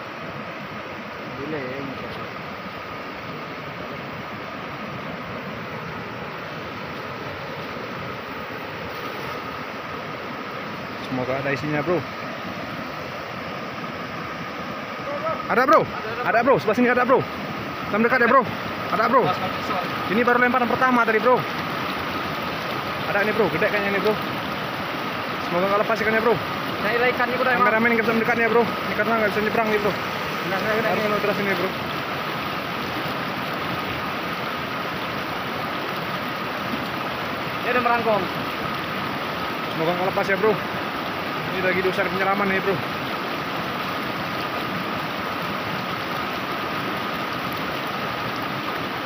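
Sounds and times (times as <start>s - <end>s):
river rushing over rocks: 0.0s - 49.0s
man talking: 1.3s - 2.2s, 11.0s - 12.1s, 15.0s - 21.6s, 23.0s - 24.2s, 25.4s - 31.8s, 37.6s - 38.3s, 39.7s - 40.6s, 41.5s - 42.8s.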